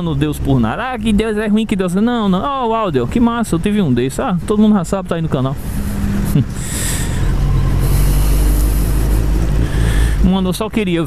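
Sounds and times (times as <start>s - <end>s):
road and wind noise: 0.0s - 11.0s.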